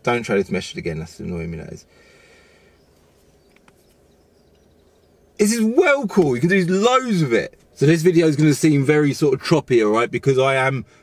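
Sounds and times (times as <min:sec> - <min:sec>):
faint clicks: 0:03.4 - 0:04.7.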